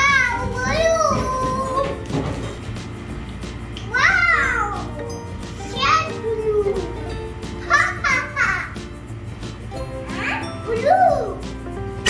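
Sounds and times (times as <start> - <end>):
child's voice: 0.0 - 2.1, 3.8 - 8.9, 10.0 - 11.6
children's music: 0.0 - 12.0.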